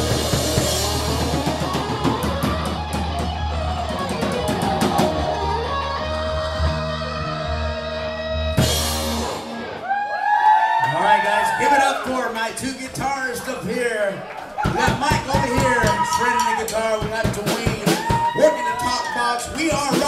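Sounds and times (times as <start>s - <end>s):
live rock band playing: 0.0s - 10.2s, 14.7s - 20.0s.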